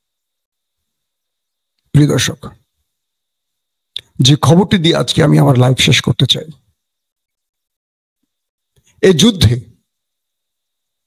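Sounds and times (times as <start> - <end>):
man speaking: 1.9 - 2.6, 4.0 - 6.6, 9.0 - 9.8.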